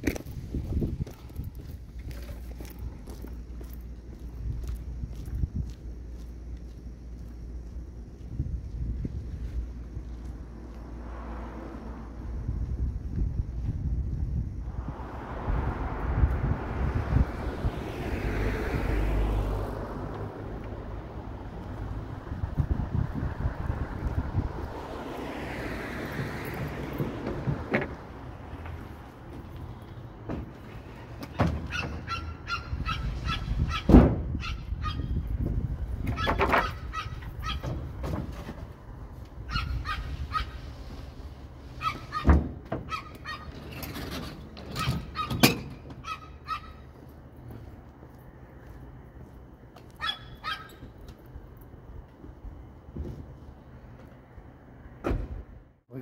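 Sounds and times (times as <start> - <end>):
cars passing: 8.8 - 56.0.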